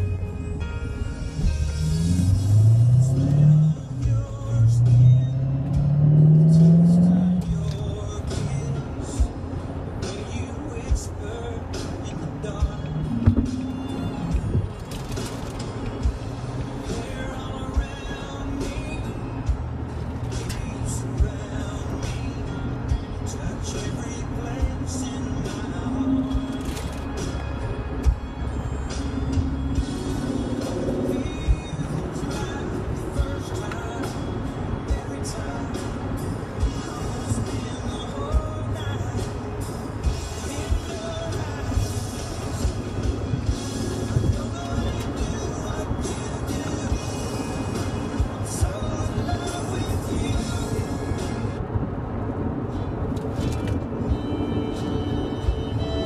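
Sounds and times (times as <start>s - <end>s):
car engine accelerating: 0.0s - 56.0s
road noise: 0.0s - 56.0s
sharp thumps: 13.1s - 13.7s.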